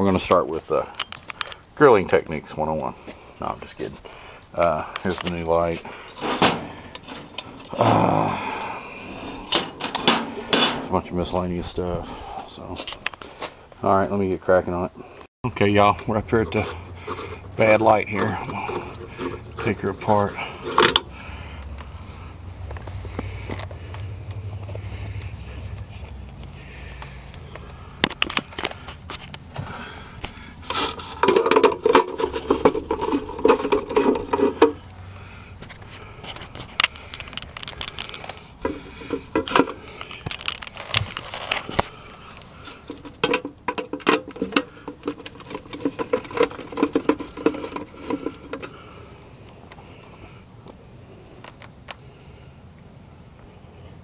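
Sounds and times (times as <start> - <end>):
plastic and metal parts clicking and rattling: 9.4 - 10.8, 15.8 - 21.9, 30.2 - 34.8, 35.7 - 48.8.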